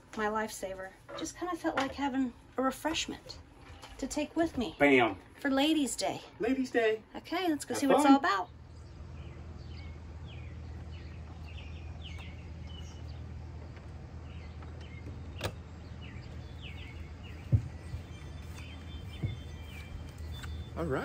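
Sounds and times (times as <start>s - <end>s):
steady low hum: 0.0s - 21.0s
birds chirping: 0.2s - 21.0s
footsteps on metal steps: 16.7s - 20.6s.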